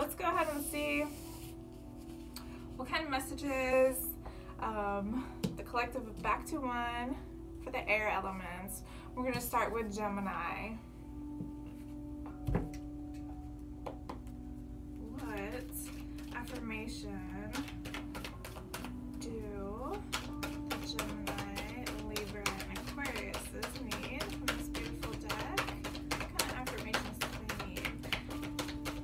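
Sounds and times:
quiet background music: 0.0s - 29.0s
cards being shuffled: 15.2s - 16.7s, 17.5s - 19.0s, 20.1s - 29.0s
playing cards clicking: 25.3s - 29.0s.

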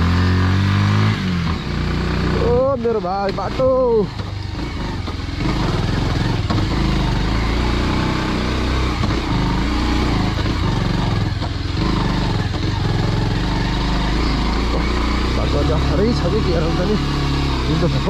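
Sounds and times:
motorcycle engine at low revs: 0.0s - 18.0s.

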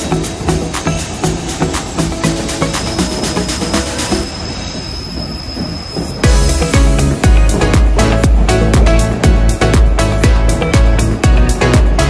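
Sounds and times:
high-pitched wheel squeal: 0.0s - 7.3s
train running gear rumbling: 0.0s - 12.0s.

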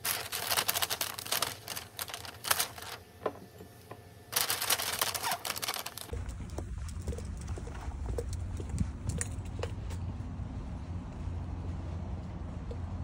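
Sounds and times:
plastic bag crinkling: 0.0s - 3.1s, 4.3s - 6.2s
wind rumble on microphone: 6.1s - 13.0s.

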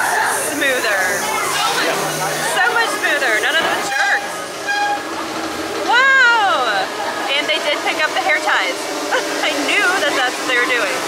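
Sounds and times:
riders' voices: 0.0s - 11.0s.

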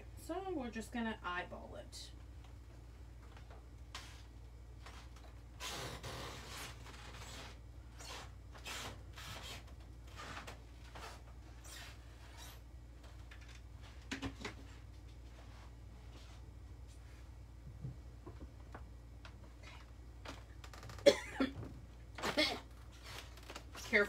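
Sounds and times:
low steady hum: 0.0s - 24.0s
soft scrapes and rustles: 14.6s - 17.3s.

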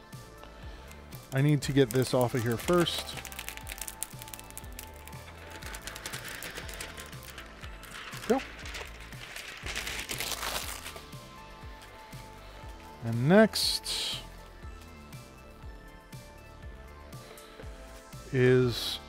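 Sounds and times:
plastic film peeling: 1.3s - 11.2s.

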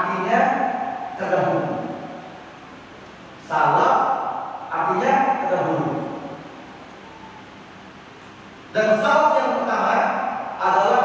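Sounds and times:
room tone hiss: 0.0s - 11.0s
man's voice: 8.8s - 11.0s.

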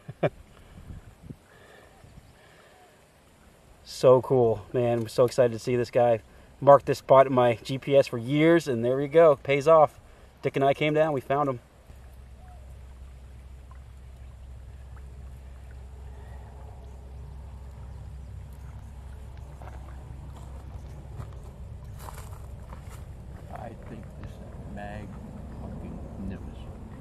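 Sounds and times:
wind buffeting microphone: 0.6s - 2.3s.

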